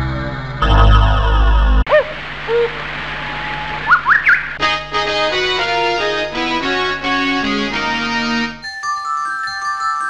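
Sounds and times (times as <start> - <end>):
birds chirping: 1.9 - 4.6
keyboard music: 4.6 - 10.0.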